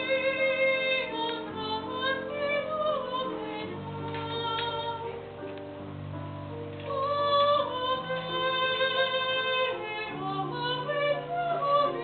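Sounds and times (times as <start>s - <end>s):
woman singing sacred song: 6.9s - 12.0s.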